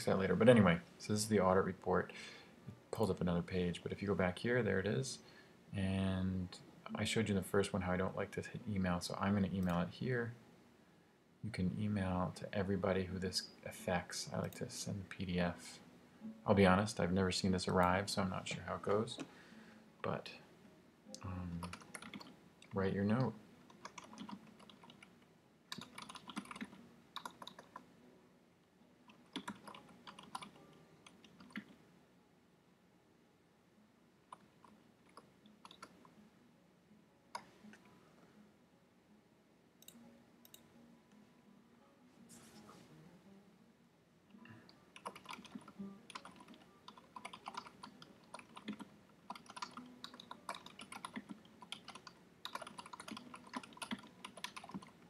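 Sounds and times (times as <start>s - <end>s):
faint keyboard typing: 21.2s - 27.9s, 29.0s - 31.8s, 34.3s - 36.2s, 44.6s - 55.0s.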